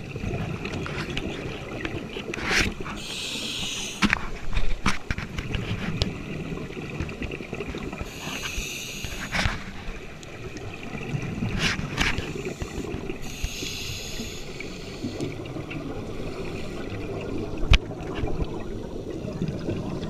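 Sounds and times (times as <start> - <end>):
bubbling rumble of exhaled bubbles: 0.0 - 3.0, 5.2 - 8.1, 9.3 - 13.3, 14.5 - 20.0
regulator hissing inhalations: 3.0 - 4.1, 8.1 - 9.4, 12.3 - 15.3.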